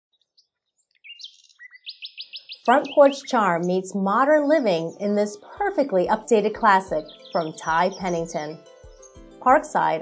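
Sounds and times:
small songbird chirping: 0.1 - 5.4, 6.5 - 9.8.

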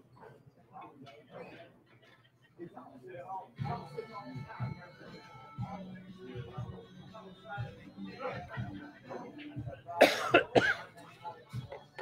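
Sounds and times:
person coughing: 10.0 - 10.9.

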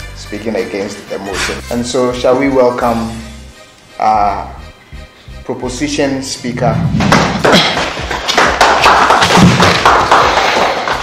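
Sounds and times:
audience applauding: 7.4 - 11.0.

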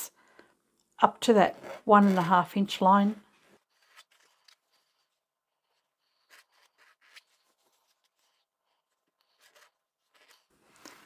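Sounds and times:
soft scrapes: 1.2 - 11.0.

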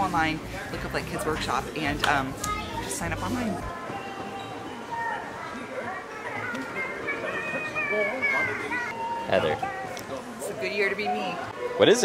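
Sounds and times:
music: 0.0 - 12.0
children's high voices: 2.4 - 2.9, 3.7 - 9.9.

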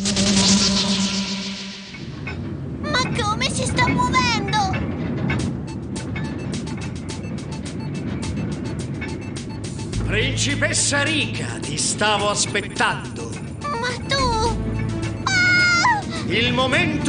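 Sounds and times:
low rumbling drone: 0.0 - 2.9, 4.8 - 16.7
gliding pitched cries: 15.2 - 16.4.

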